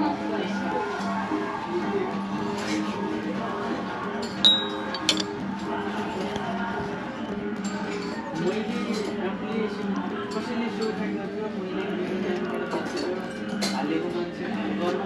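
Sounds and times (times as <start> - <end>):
background music: 0.0 - 15.0
metal plate clinking: 4.5 - 5.3.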